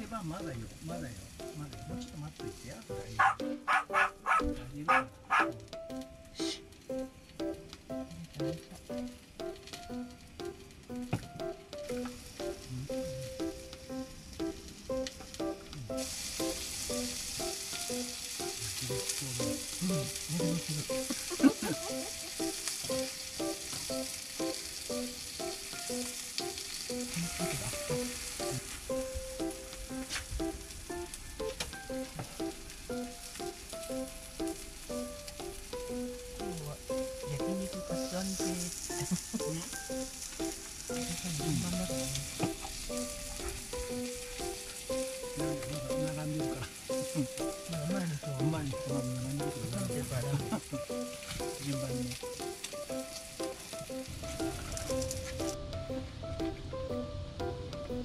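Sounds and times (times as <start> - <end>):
meat sizzling on grill pan: 0.0 - 4.4, 6.6 - 56.0.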